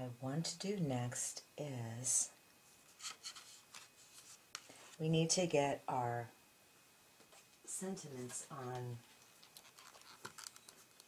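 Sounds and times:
hands rustling paper: 0:08.4 - 0:11.0.

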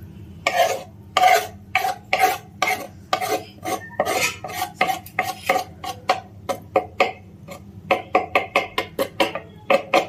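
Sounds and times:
knife chopping greens on board: 0:00.5 - 0:10.0.

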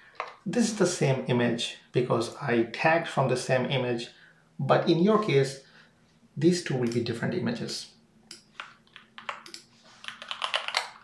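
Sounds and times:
typing on computer keyboard: 0:08.3 - 0:11.0.

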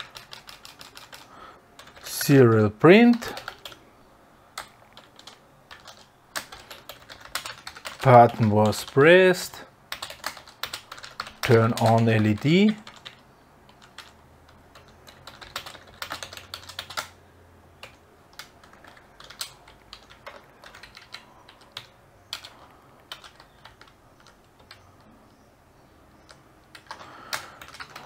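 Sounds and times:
typing on a computer keyboard: 0:00.0 - 0:03.8, 0:04.6 - 0:09.0, 0:09.9 - 0:17.2, 0:17.8 - 0:25.1, 0:26.2 - 0:28.0.

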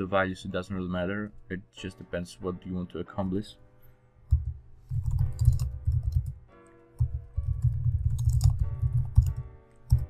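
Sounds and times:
background music: 0:00.0 - 0:10.0
computer keyboard typing: 0:04.3 - 0:06.4, 0:07.0 - 0:10.0.

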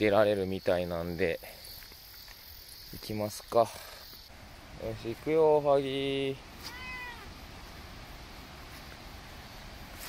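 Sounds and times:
faint outdoor background: 0:00.0 - 0:10.0
cat meowing: 0:06.6 - 0:07.3.

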